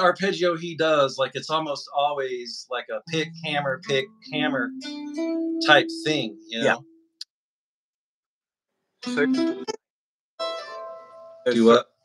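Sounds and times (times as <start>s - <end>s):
electric guitar note ringing: 3.1s - 7.0s, 9.0s - 9.8s.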